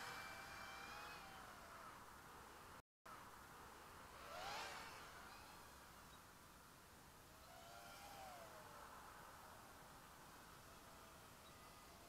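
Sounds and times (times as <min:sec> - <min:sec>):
quadcopter motors whining: 0:00.0 - 0:02.1, 0:04.1 - 0:06.3, 0:07.3 - 0:12.0.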